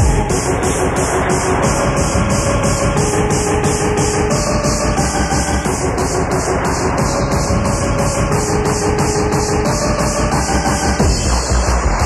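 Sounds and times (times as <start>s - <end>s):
loud techno dance track: 0.0s - 12.0s.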